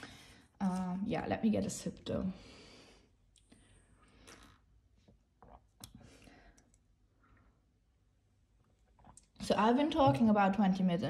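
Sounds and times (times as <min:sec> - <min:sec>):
person sipping a drink: 0:03.3 - 0:07.4.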